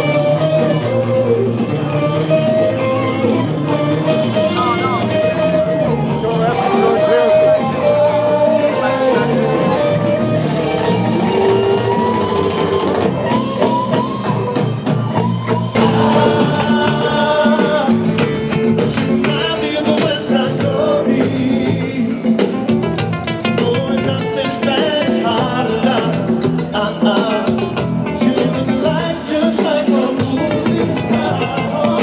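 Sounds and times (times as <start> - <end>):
person singing: 0.0 - 13.0, 15.6 - 22.9, 23.5 - 32.0
bass guitar: 0.0 - 32.0
congas: 0.0 - 32.0
drums with cymbals: 0.0 - 32.0
electric guitar lead notes: 0.0 - 32.0.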